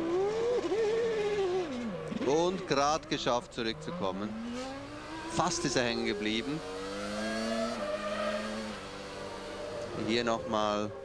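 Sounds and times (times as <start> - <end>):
racing car engine running: 0.0 - 11.0.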